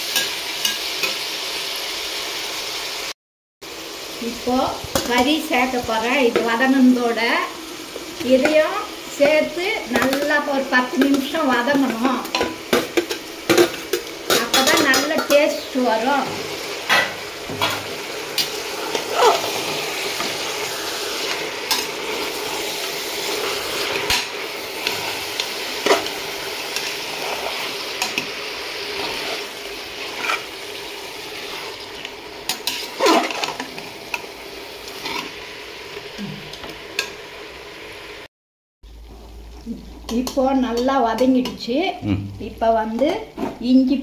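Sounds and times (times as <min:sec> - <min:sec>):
food sizzling in hot oil: 0:00.0 - 0:44.0
ladle scraping and clinking on pot: 0:28.9 - 0:30.5, 0:32.5 - 0:33.9.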